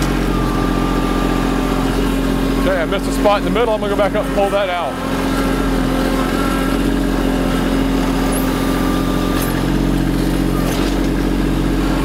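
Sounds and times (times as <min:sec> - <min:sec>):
tractor diesel engine running: 0:00.0 - 0:12.0.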